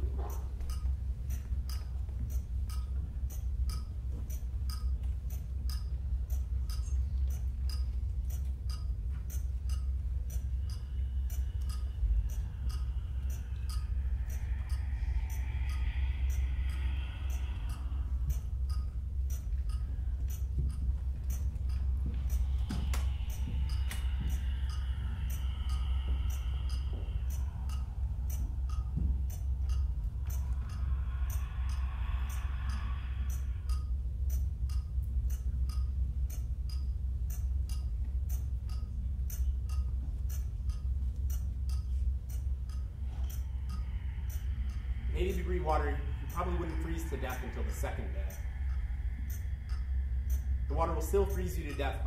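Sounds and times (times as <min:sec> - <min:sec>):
faint high tones: 0:10.3 - 0:34.0, 0:42.9 - 0:52.0.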